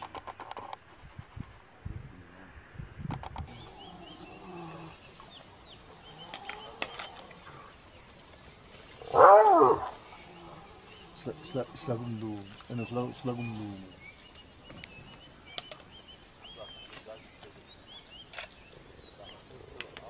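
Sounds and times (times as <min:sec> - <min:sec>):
high chirping calls: 0:03.5 - 0:20.0
loud wavering animal cry: 0:09.0 - 0:11.0.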